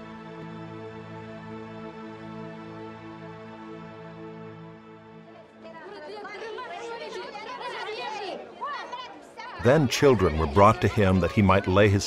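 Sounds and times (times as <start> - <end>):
sustained music: 0.0 - 6.7
crowd chatter: 5.1 - 12.0.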